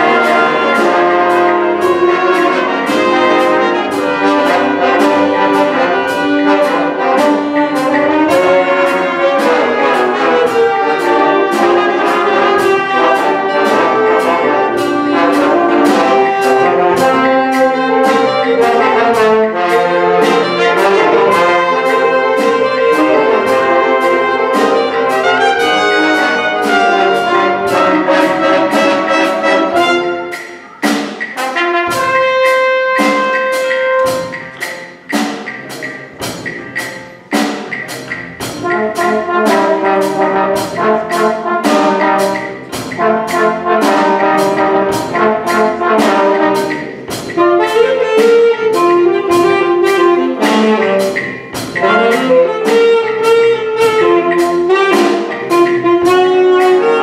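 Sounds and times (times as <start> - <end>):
jazz band brass and saxophones: 0.0 - 57.0
steady percussion: 0.0 - 57.0.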